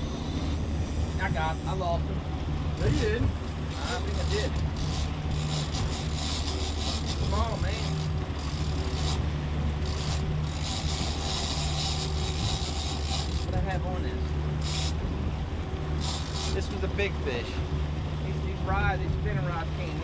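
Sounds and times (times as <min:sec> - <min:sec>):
wind on microphone: 0:00.0 - 0:13.6
outboard motors droning: 0:00.0 - 0:20.0.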